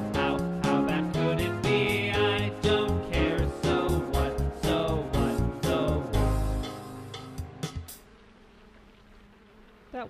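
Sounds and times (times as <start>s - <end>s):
faint buzzing hum: 0.0s - 10.0s.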